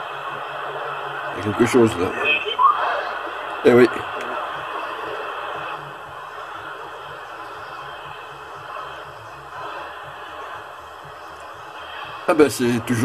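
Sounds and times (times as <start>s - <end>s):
faint distant radio station: 0.0s - 13.0s
radio static hiss: 0.0s - 13.0s.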